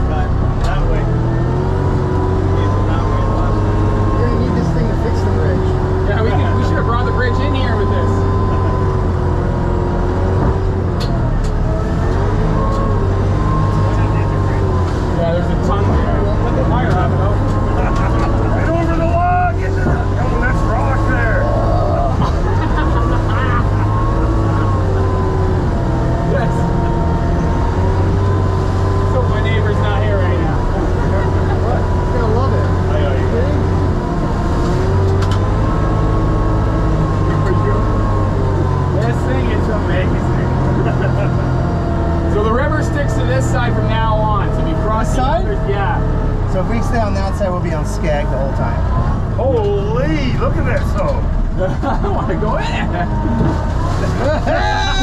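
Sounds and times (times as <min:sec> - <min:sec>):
diesel engine running: 0:00.0 - 0:55.0.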